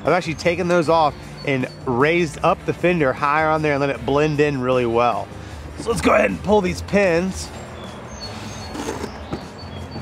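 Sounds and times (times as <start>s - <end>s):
small birds chirping: 0.0s - 3.5s, 7.3s - 10.0s.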